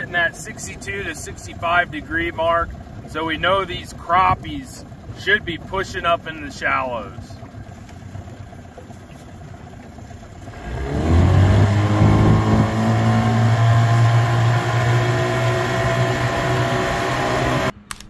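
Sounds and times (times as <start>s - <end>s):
outboard motor revving: 0.0s - 17.8s.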